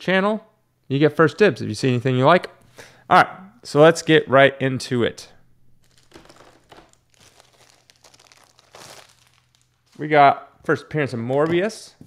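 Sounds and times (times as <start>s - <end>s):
plastic crinkling and rustling: 5.8s - 10.2s.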